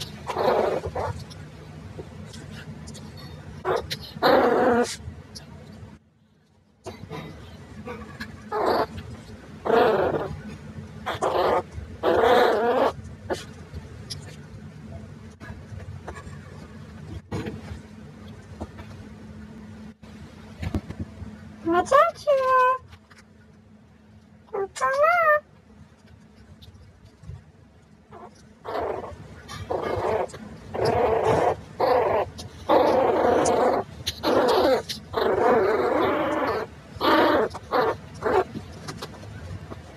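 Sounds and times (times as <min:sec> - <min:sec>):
puppies growling: 0:00.0 - 0:01.5, 0:02.3 - 0:05.0, 0:06.9 - 0:14.5, 0:28.1 - 0:39.9.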